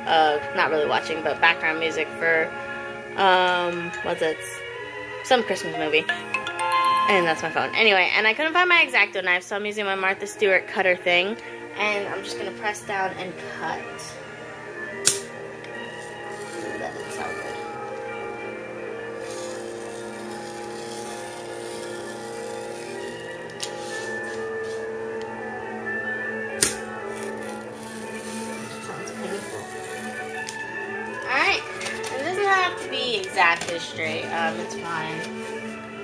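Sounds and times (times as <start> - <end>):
soft sustained background music: 0.0 - 36.0.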